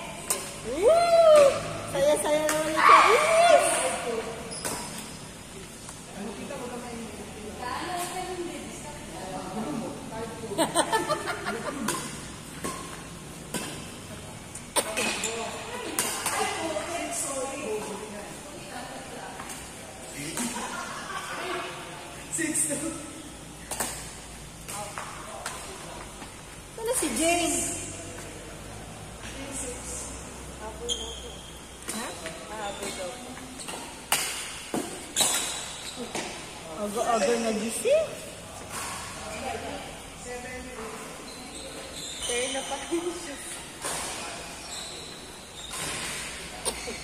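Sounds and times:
racket hitting shuttlecock: 11.8s - 14.0s, 23.6s - 25.6s, 33.7s - 36.3s.

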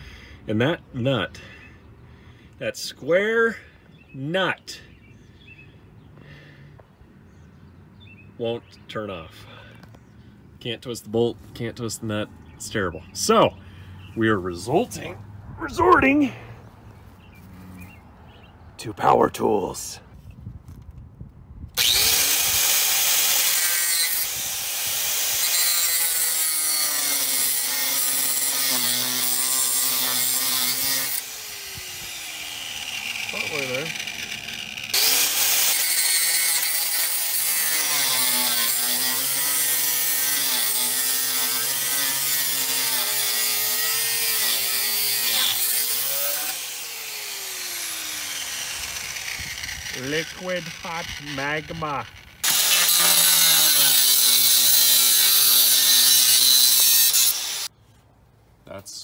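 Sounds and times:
power grinder cutting metal: 21.8s - 57.7s.

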